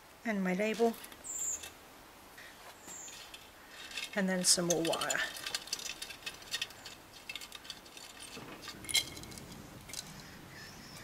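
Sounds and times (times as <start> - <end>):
label scraping in a pot: 2.6 - 10.2.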